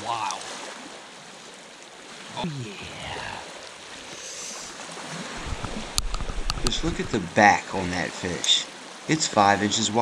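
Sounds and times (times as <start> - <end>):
small waves lapping shore: 0.0 - 10.0.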